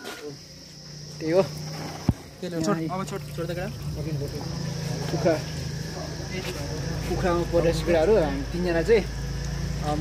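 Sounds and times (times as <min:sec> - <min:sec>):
high-pitched insect buzzing: 0:00.0 - 0:10.0.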